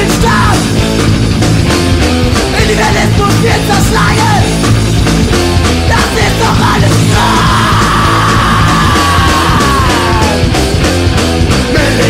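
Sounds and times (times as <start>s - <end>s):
shouted vocals: 0.0s - 0.7s, 5.9s - 10.5s
hardcore punk song: 0.0s - 12.0s.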